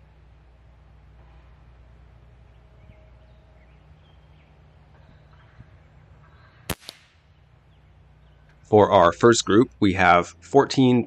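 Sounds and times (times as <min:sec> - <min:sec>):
faint bird chirps: 0:02.4 - 0:08.7
air rifle shot: 0:06.7 - 0:07.4.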